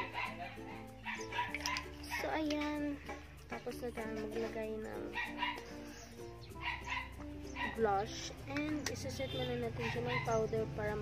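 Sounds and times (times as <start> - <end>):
dog barking: 0.0 - 1.9, 5.1 - 5.7, 6.6 - 7.8, 9.8 - 10.4
background music with low notes: 0.0 - 11.0.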